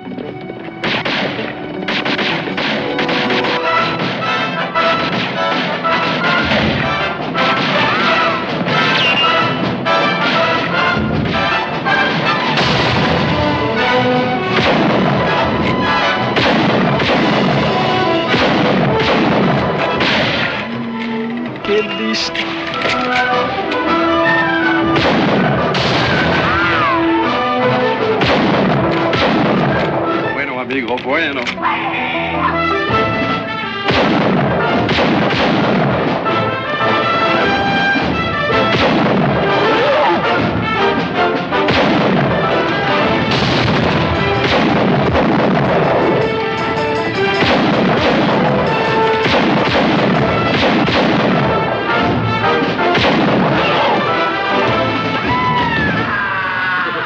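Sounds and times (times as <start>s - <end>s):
orchestral action music: 0.0s - 57.0s
rapid gunfire: 0.8s - 30.7s, 32.9s - 55.2s
people shouting: 23.0s - 28.3s, 31.5s - 32.9s, 39.4s - 40.6s, 53.5s - 57.0s.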